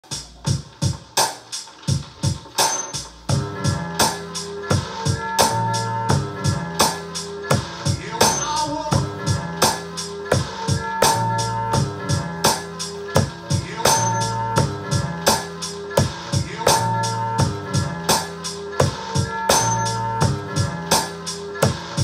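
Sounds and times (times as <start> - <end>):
drum hits: 0.0 - 11.2, 11.8 - 16.8
bass and melody notes: 0.0 - 22.0
hip-hop beat: 0.0 - 22.0.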